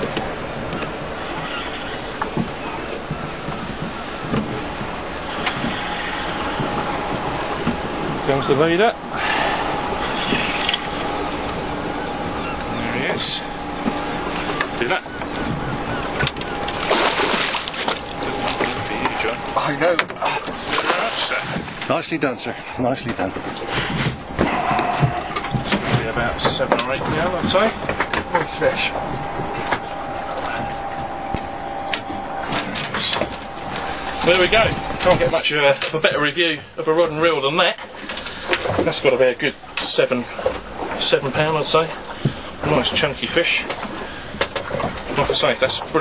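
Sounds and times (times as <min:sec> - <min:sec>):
boat engine hum: 0:00.0 - 0:46.0
wind and water rushing: 0:00.0 - 0:46.0.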